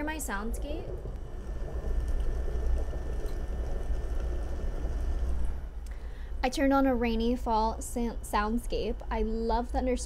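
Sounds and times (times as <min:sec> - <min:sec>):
deep low rumble: 0:00.0 - 0:05.8
steady rain-like noise: 0:00.0 - 0:05.8.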